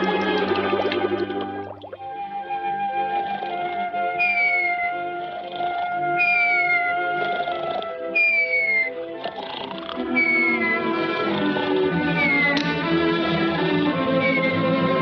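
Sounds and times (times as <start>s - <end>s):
quiet orchestral cartoon music: 0.0s - 15.0s.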